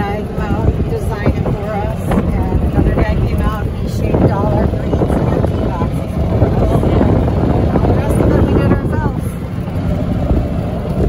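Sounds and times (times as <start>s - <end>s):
golf cart rolling rumble: 0.0s - 11.0s
wind buffeting microphone: 0.0s - 11.0s.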